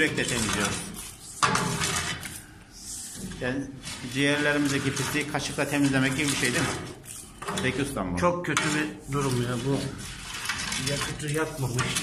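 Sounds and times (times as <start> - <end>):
metal shovel scraping soot: 0.0 - 7.9, 8.5 - 12.0.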